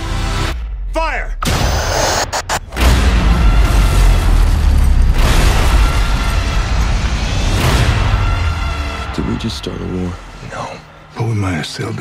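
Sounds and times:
trailer music: 0.0s - 12.0s.

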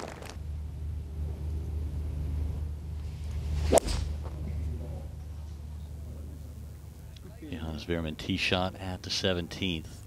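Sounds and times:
steady low hum: 0.0s - 10.0s
golf club striking ball: 3.6s - 4.2s.

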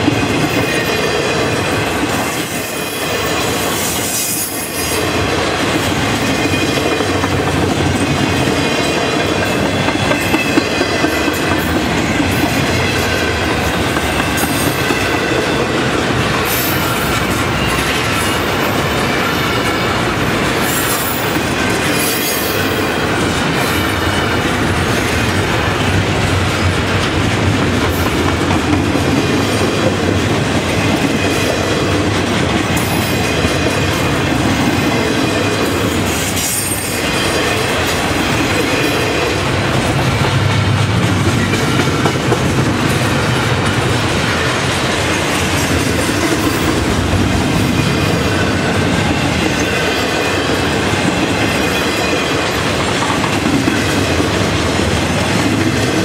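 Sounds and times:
freight train rumbling past: 0.0s - 56.0s
wheels clacking over rail joints: 0.0s - 56.0s.

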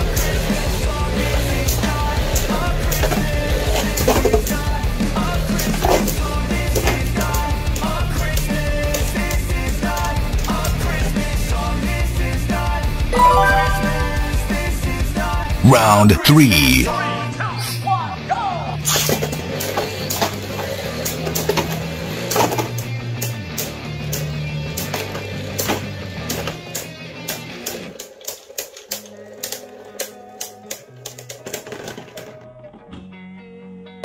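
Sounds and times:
background music: 13.1s - 17.2s.

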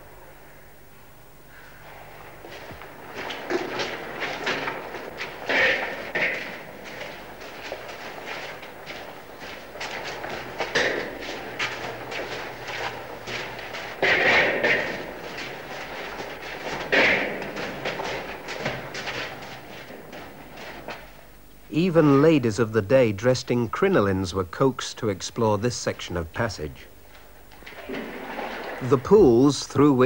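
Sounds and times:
water splashes: 27.6s - 30.0s.

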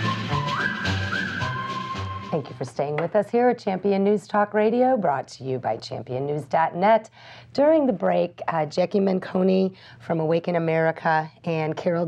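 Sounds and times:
whistle-like melody: 0.0s - 2.5s.

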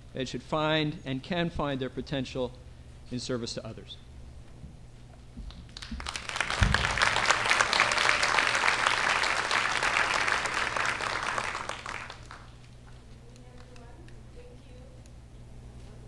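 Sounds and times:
audience applauding: 5.7s - 12.7s
low thump: 6.6s - 7.2s.

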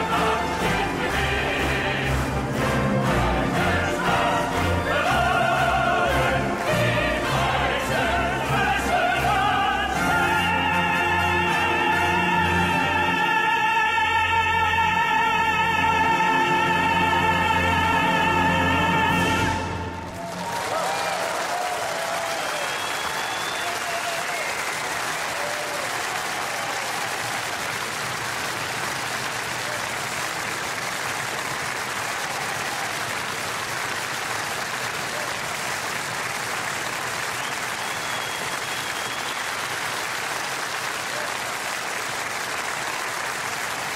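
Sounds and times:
audience applauding: 0.0s - 11.4s, 19.8s - 43.9s.

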